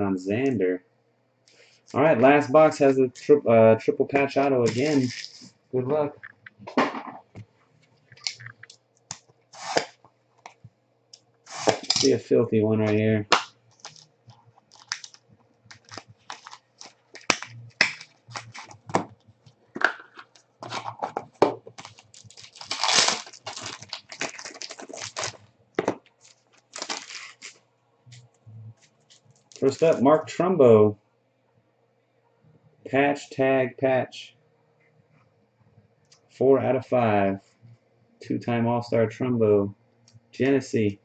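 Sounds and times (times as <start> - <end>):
plastic wrapping crinkling and tearing: 4.6 - 5.5, 13.3 - 19.0, 20.1 - 27.6, 28.8 - 30.0.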